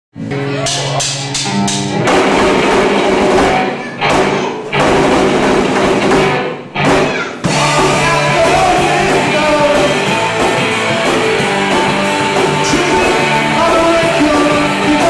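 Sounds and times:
rock band playing: 0:00.2 - 0:15.0.

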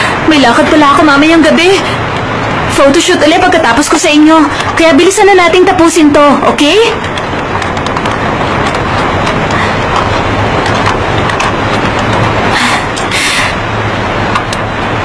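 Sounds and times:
road traffic noise: 0:00.0 - 0:15.0.

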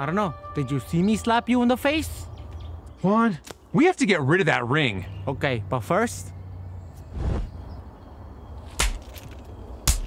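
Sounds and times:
sharp slaps to the face: 0:08.7 - 0:09.1.

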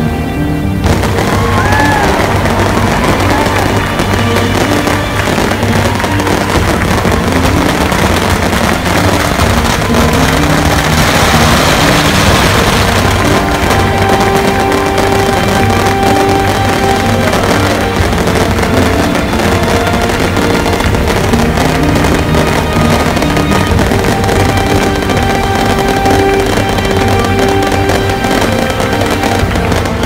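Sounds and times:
melodic music: 0:00.0 - 0:30.0
firecrackers crackling: 0:00.7 - 0:30.0.

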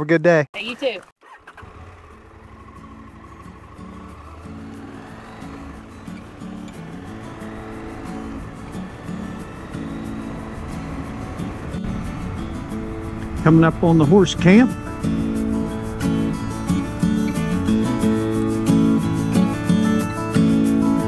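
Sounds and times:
motorcycle engine riding off: 0:00.8 - 0:21.0
background music: 0:02.9 - 0:21.0.

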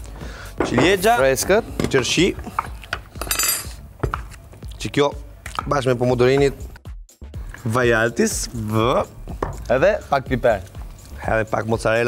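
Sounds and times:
metal utensil clinking on glass bowl: 0:03.2 - 0:03.8.

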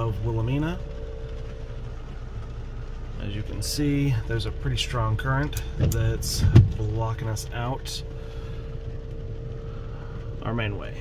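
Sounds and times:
vehicle engine idling: 0:00.0 - 0:11.0.

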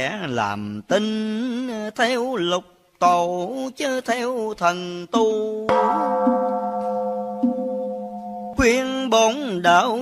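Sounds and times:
bowl bell ringing: 0:05.7 - 0:08.9
low steady tone: 0:05.7 - 0:09.0.

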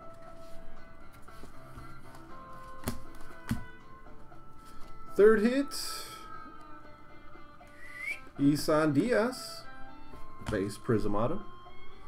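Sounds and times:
background music with held notes: 0:00.0 - 0:12.0
trading cards tapping: 0:01.4 - 0:03.7, 0:10.4 - 0:10.7.

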